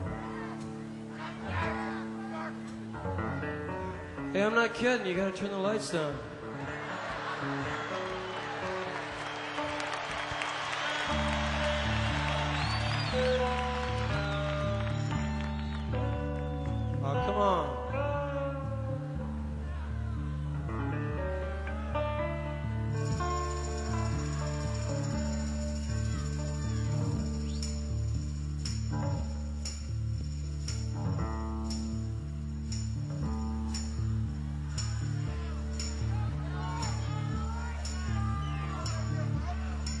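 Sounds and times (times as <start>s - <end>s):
deep bass line: 11.2s - 40.0s.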